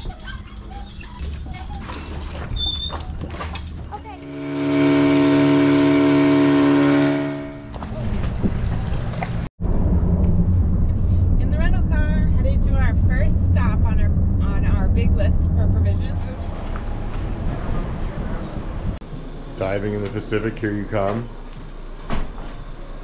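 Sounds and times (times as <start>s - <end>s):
car road noise: 2.2s - 23.0s
horn-like chord tone: 4.2s - 7.7s.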